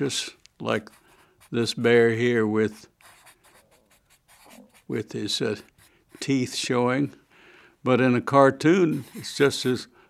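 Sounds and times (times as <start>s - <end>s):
marker scratching on paper: 0.8s - 1.9s, 2.7s - 6.6s, 8.9s - 9.9s.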